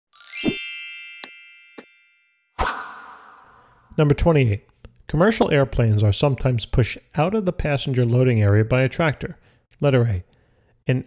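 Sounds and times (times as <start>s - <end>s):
bright rising chime: 0.1s - 3.9s.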